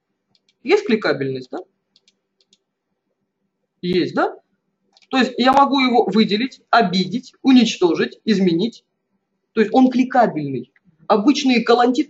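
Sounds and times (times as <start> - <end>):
computer mouse clicks: 0.3 - 0.6, 1.9 - 2.7, 4.9 - 5.2.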